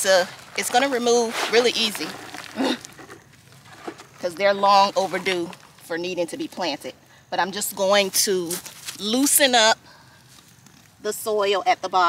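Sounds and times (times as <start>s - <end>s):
plastic scraping against soil: 0.0s - 6.9s, 7.6s - 11.3s.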